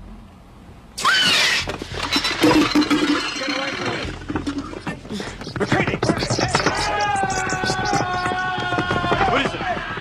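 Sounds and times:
sharp clattering and crackling knocks: 0:01.6 - 0:10.0
steady shrill tone: 0:02.1 - 0:09.1.

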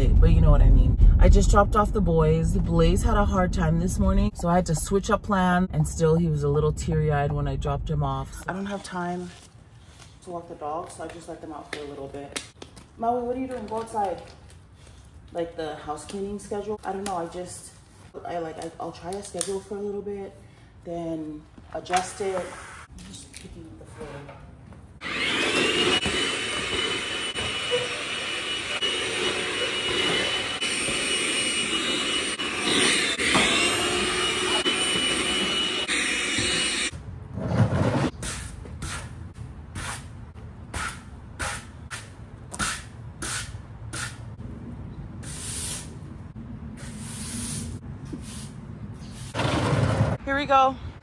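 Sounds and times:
stick vacuum motor whine: 0:25.0 - 0:36.9.

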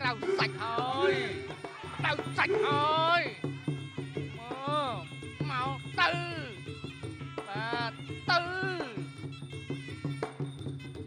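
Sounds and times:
drums: 0:00.0 - 0:11.0
reed oboe melody: 0:00.0 - 0:11.0.

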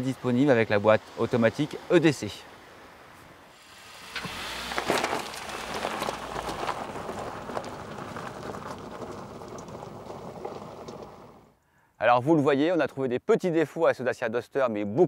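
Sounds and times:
tyres crunching on gravel: 0:00.2 - 0:11.6
low engine rumble: 0:03.6 - 0:11.6.

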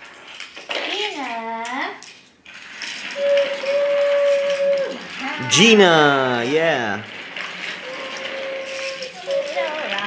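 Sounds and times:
toy trains clinking on hardwood floor: 0:00.0 - 0:10.0.

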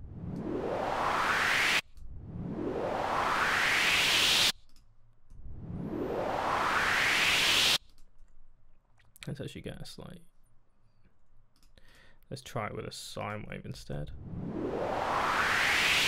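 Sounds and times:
synthesized noisy riser sweep: 0:00.0 - 0:04.5, 0:05.4 - 0:07.8, 0:14.1 - 0:16.0.

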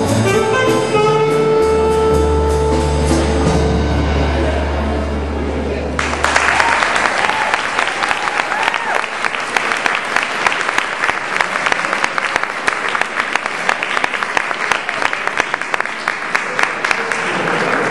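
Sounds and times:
audience applauding: 0:06.0 - 0:17.9.

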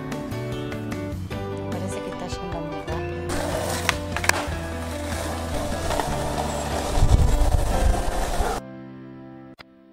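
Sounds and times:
background music with bass line: 0:00.0 - 0:08.6
skateboard wheels rolling on asphalt: 0:02.9 - 0:08.6.

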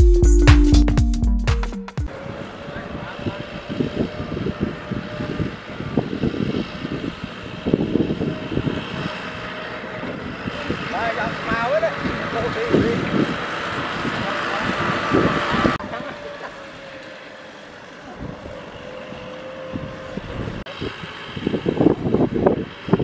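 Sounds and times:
faint voices: 0:02.1 - 0:05.2
wind on microphone: 0:02.1 - 0:15.9, 0:19.7 - 0:23.0
tractor diesel engine running: 0:02.1 - 0:23.0.

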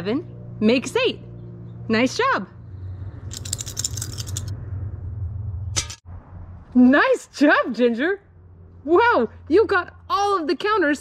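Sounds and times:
low hum: 0:00.0 - 0:06.8
plastic counters rattling: 0:03.3 - 0:04.5.

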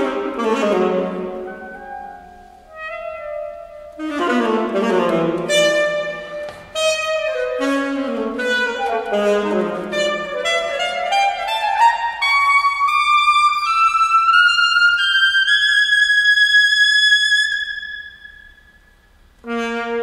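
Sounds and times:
alto saxophone solo: 0:00.0 - 0:18.6, 0:19.4 - 0:20.0.

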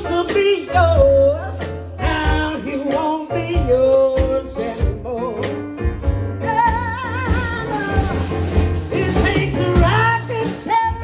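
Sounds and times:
woman singing into microphone: 0:00.0 - 0:05.6, 0:06.4 - 0:11.0
drums: 0:00.0 - 0:11.0.

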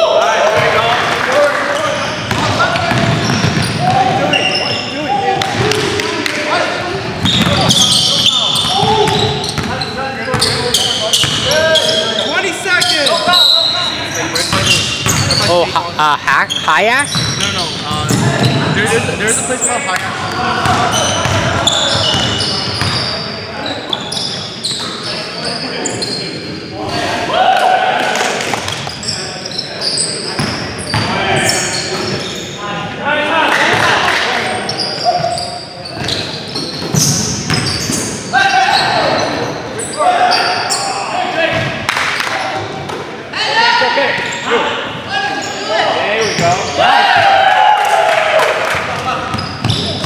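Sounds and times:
players calling out: 0:00.0 - 0:50.0
sneakers squeaking on court: 0:01.8 - 0:05.0, 0:07.2 - 0:15.7, 0:16.4 - 0:26.5, 0:28.6 - 0:32.6, 0:34.4 - 0:41.8, 0:45.3 - 0:46.8, 0:49.2 - 0:50.0
basketball bouncing: 0:02.3 - 0:04.2, 0:07.2 - 0:07.9, 0:08.6 - 0:09.7, 0:17.0 - 0:18.8, 0:20.0 - 0:23.0, 0:36.8 - 0:38.0.

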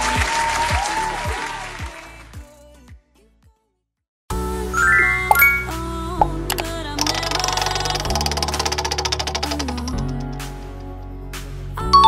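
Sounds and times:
background music with bass: 0:04.3 - 0:12.0
prize wheel ticking: 0:07.0 - 0:10.3.

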